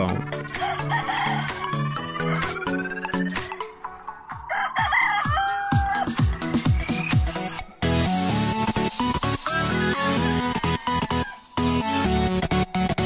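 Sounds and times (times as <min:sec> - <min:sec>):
electronic background music: 0:00.0 - 0:13.0
rooster crowing: 0:00.5 - 0:02.8, 0:04.3 - 0:06.6, 0:09.4 - 0:11.8.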